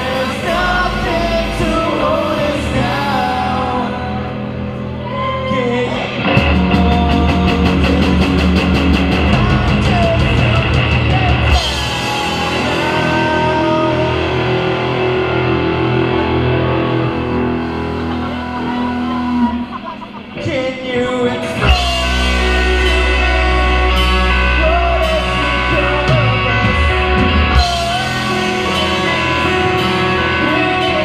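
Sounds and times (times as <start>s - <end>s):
rock band playing loudly: 0.0s - 31.0s.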